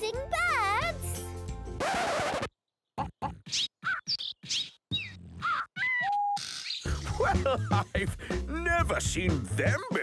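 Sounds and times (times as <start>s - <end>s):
cartoon bird chirps and whistles: 3.4s - 6.9s.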